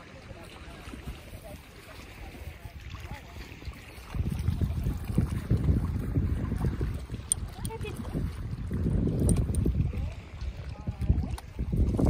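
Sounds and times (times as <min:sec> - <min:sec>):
wind buffeting microphone: 0:00.2 - 0:12.0.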